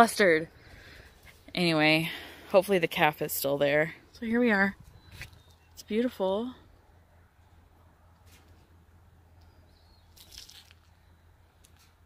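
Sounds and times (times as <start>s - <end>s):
crackling rustle: 9.4s - 12.0s.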